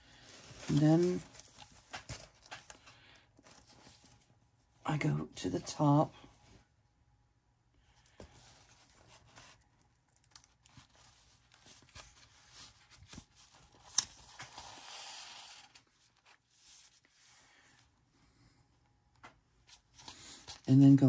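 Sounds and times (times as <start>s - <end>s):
paper taps and rustles: 0.6s - 3.6s
paper sliding: 14.2s - 15.9s.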